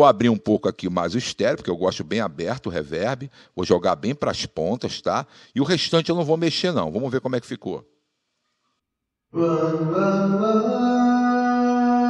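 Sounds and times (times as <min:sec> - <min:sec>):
person singing long note with reverb: 0:09.3 - 0:12.0.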